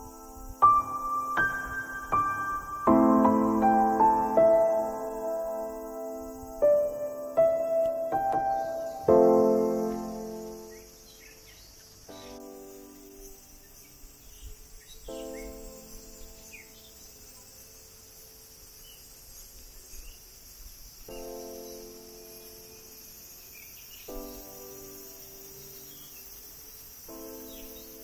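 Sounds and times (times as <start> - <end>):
soft background music chords: 0.0 - 14.4
high-pitched insect drone: 0.0 - 28.0.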